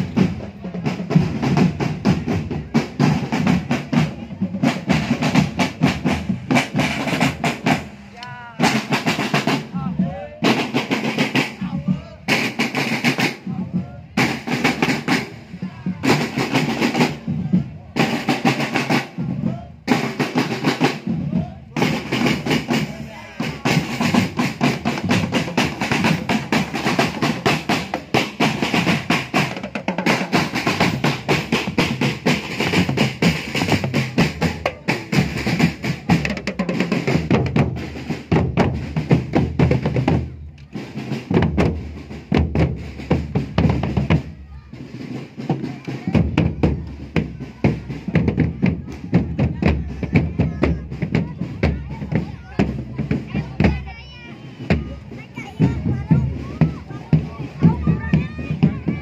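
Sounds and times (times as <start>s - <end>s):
snare drum rolls: 0.0s - 53.9s
marching drum band: 0.0s - 59.0s.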